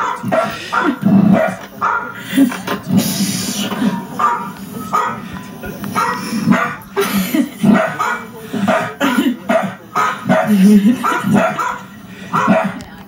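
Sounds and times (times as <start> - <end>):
dog barking: 0.0 - 2.2, 4.2 - 5.2, 5.9 - 6.8, 7.6 - 12.9.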